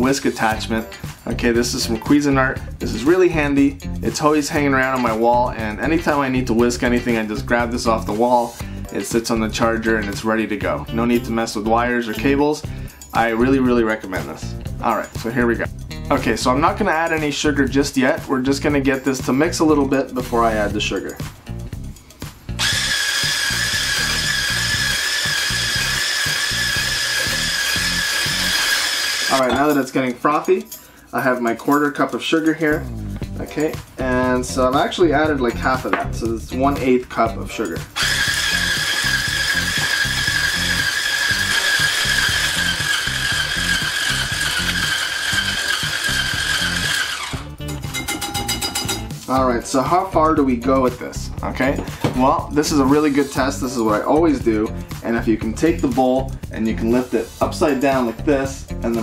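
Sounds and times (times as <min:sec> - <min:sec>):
background music with beat: 0:00.0 - 0:59.0
hand blender whining: 0:22.6 - 0:29.5, 0:38.0 - 0:47.6.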